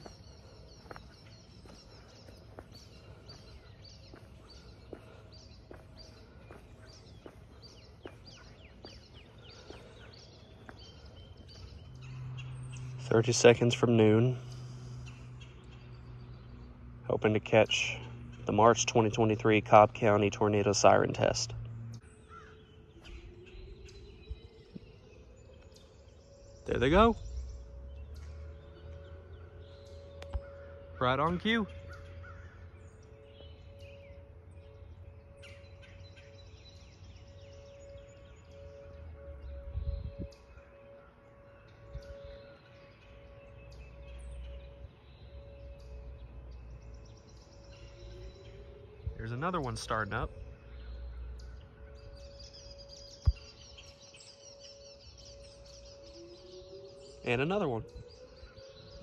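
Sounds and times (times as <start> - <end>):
birds chirping: 0.0 - 59.0
distant warning siren tone: 0.0 - 59.0.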